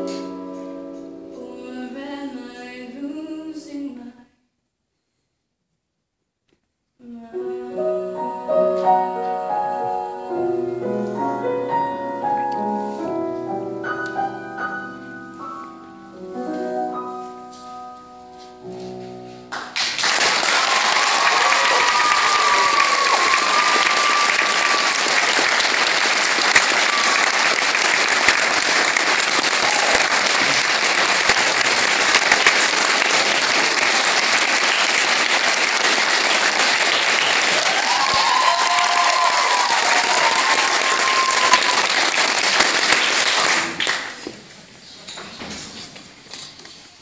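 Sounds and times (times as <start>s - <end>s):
audience applause: 19.5s - 44.4s.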